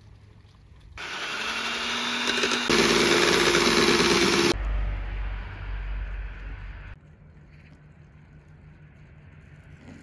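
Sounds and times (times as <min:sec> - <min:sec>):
electric hand mixer running: 0:01.0 - 0:04.6.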